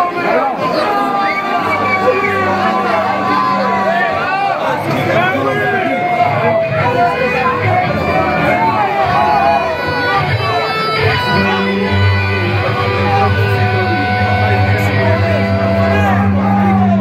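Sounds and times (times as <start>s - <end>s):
electric guitar playing: 1.2s - 17.0s
bass notes: 6.6s - 17.0s.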